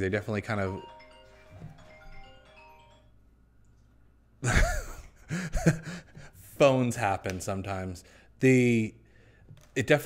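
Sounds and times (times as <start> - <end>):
phone ringtone melody: 0.5 - 3.4
man laughing: 4.4 - 6.4.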